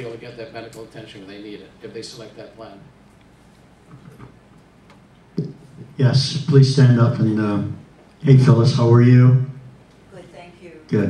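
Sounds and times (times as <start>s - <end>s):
microphone handling thump: 5.4s - 5.7s.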